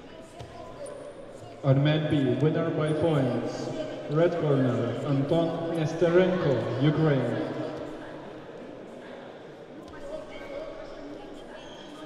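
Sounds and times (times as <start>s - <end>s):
indistinct chatter echoing in hall: 0.0s - 12.0s.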